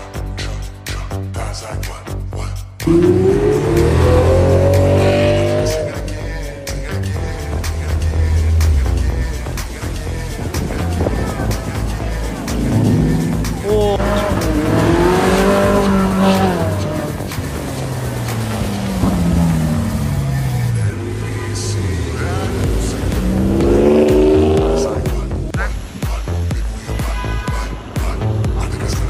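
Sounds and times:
car engines revving: 2.8s - 27.0s.

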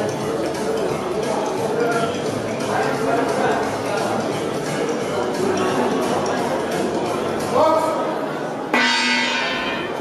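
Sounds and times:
boxing ring bell ringing: 8.8s - 10.0s.

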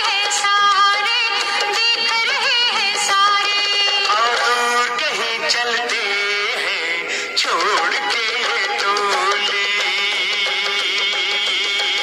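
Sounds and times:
instrumental music: 0.0s - 12.0s
person singing children's song: 0.0s - 12.0s.

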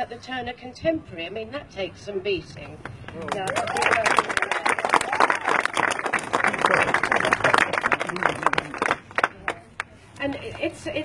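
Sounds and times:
crowd applauding: 3.1s - 9.9s.

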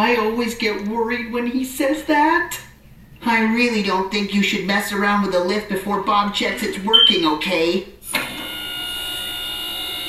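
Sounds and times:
electric motor whine: 8.1s - 10.0s.

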